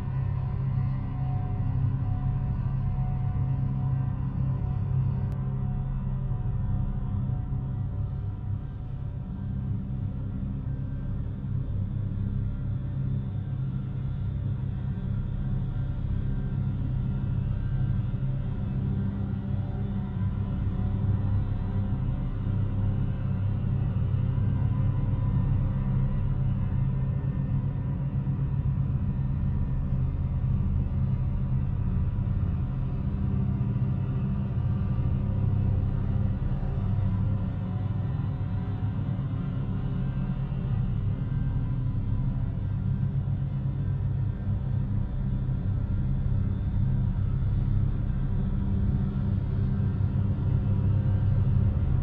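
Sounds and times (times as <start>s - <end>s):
low music drone: 0.0s - 52.0s.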